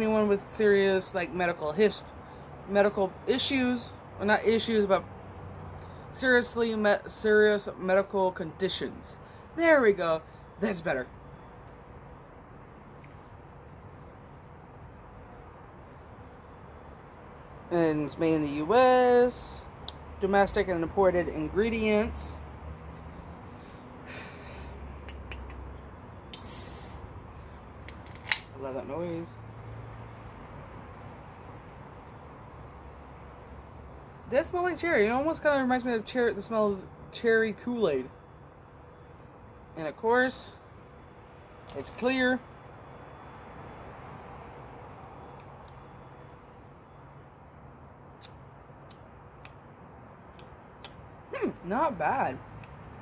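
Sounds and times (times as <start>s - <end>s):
outdoor background noise: 0.0s - 53.0s.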